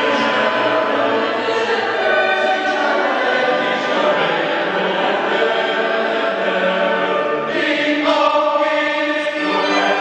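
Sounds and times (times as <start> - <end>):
choir singing long chords: 0.0 - 10.0.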